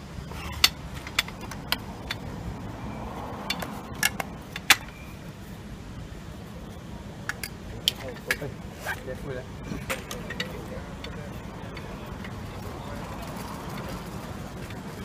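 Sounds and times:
metal clicks and clacks: 0:00.4 - 0:02.3, 0:03.4 - 0:05.0.

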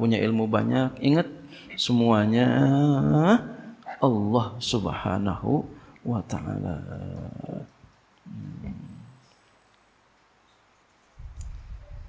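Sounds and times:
man humming low: 0:08.3 - 0:09.1.

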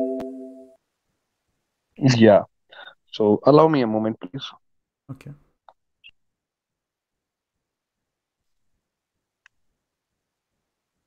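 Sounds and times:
man speaking: 0:02.0 - 0:02.5, 0:03.1 - 0:05.4.

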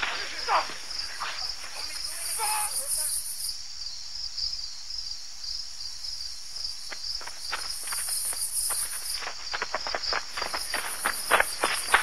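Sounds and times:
crickets chirping: 0:00.0 - 0:12.0
high insect buzz: 0:00.0 - 0:12.0.

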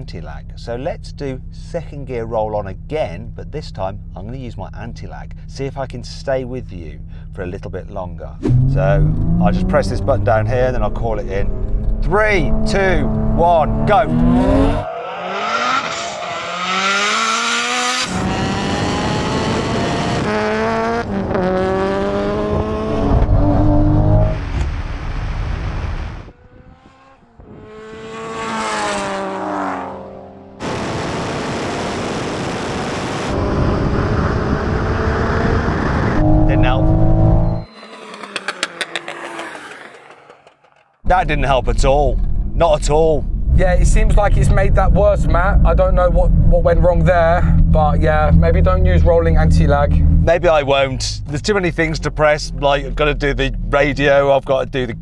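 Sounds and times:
turbocharged cars accelerating: 0:08.4 - 0:55.0.

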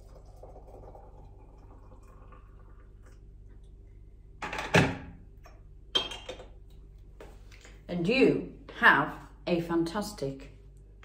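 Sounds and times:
hot water pouring into cup: 0:00.0 - 0:03.8.

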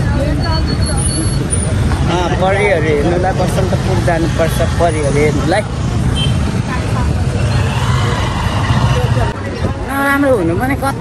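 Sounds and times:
traffic rumble: 0:00.0 - 0:11.0
vehicles passing: 0:00.0 - 0:11.0.

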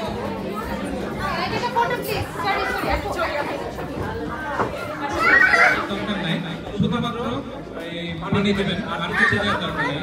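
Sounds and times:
indistinct chatter in a hall: 0:00.0 - 0:10.0.

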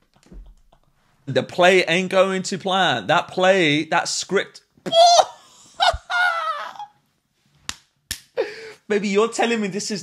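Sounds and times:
man shouting and laughing: 0:04.8 - 0:07.0.

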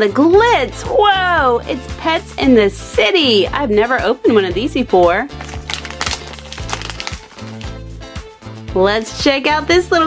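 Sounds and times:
plastic bag crinkling and tearing: 0:05.3 - 0:07.8.

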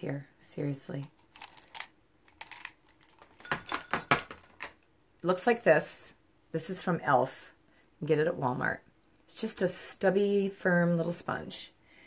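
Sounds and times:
cosmetic tools clicking and clattering: 0:01.2 - 0:04.8.

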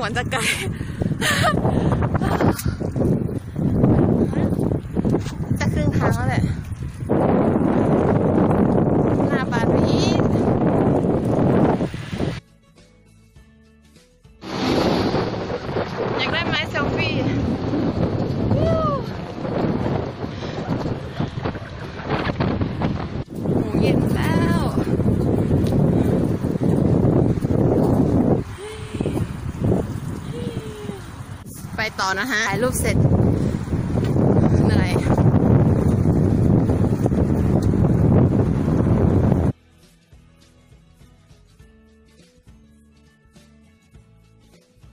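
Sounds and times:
wind buffeting microphone: 0:00.0 - 0:12.4, 0:14.4 - 0:39.6
short rising and falling tone: 0:14.4 - 0:18.6.

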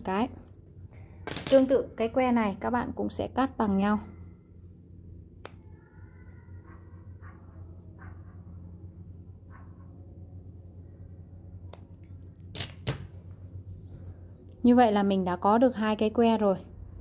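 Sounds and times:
low steady hum: 0:00.0 - 0:17.0
scissors snipping paper: 0:05.4 - 0:05.8.

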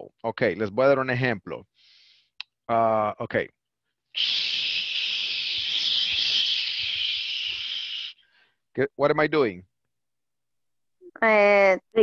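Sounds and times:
man hissing shhh: 0:04.1 - 0:08.6.

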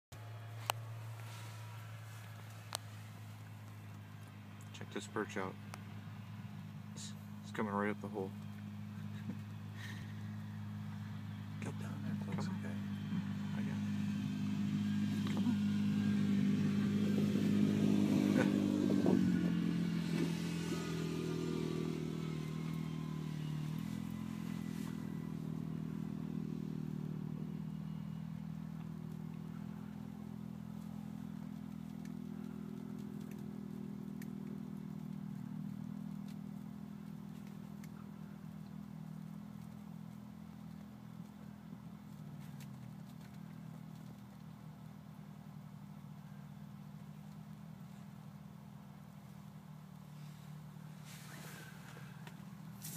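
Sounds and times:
engine running: 0:00.1 - 0:52.9.

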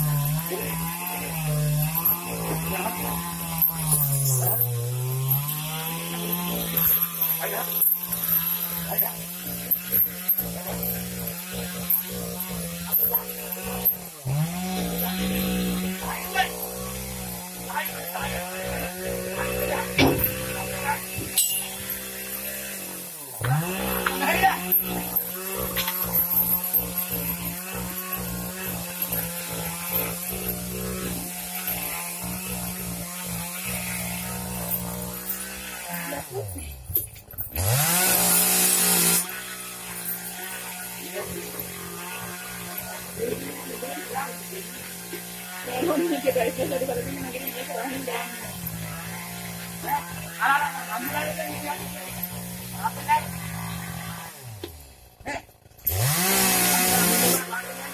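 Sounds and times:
small engine running at high speed: 0:00.0 - 0:57.9.

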